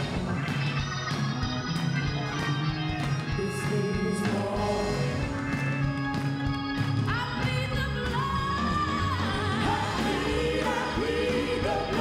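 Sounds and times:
keyboard and band accompaniment: 0.0 - 12.0
group singing worship song: 9.2 - 12.0.

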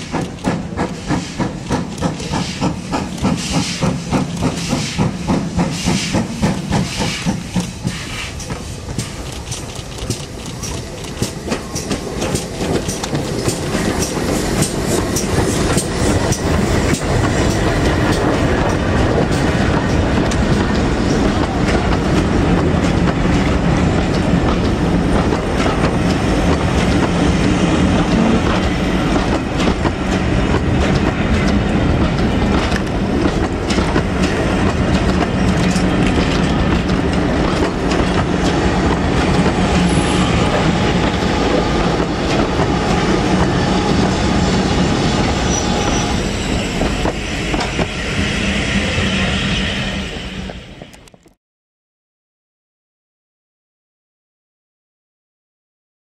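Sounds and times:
wheels clicking over rail joints: 0.0 - 44.3
steam train passing: 0.0 - 51.3.

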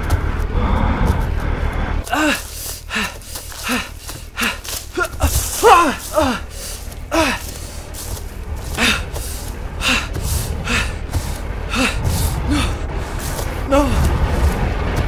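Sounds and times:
low rumble: 0.0 - 15.0
person panting and gasping: 2.0 - 14.1.

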